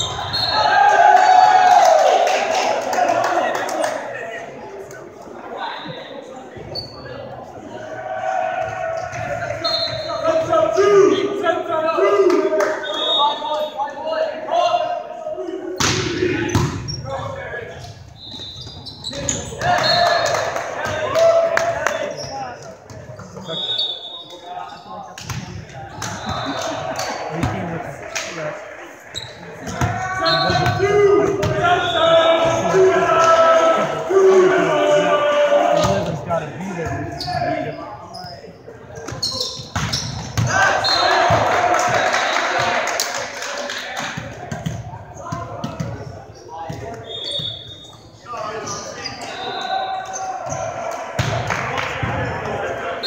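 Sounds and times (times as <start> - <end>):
players shouting: 0.0 - 4.2, 7.6 - 17.8, 19.0 - 22.6, 25.8 - 37.8, 40.3 - 43.0.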